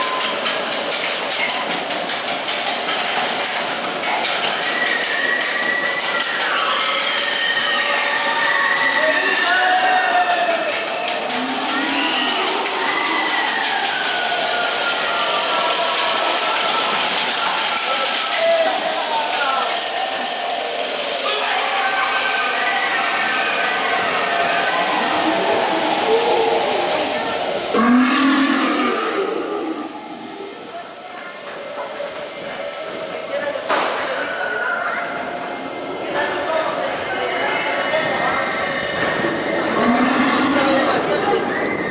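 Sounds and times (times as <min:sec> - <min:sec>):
rattling rumble of wheels on rails: 0:00.0 - 0:33.5
high squeals gliding down: 0:22.4 - 0:30.8.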